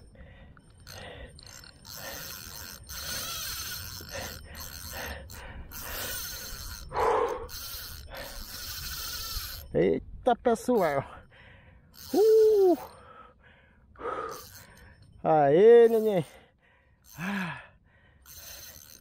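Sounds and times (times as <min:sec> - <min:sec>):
fishing reel buzzing: 0:00.0 - 0:10.0, 0:10.6 - 0:11.2, 0:11.9 - 0:13.3, 0:14.0 - 0:19.0.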